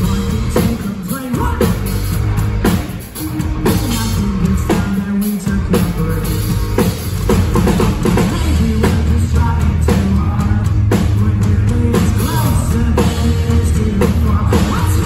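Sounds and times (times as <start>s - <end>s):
pop-punk band playing live: 0.0s - 15.0s.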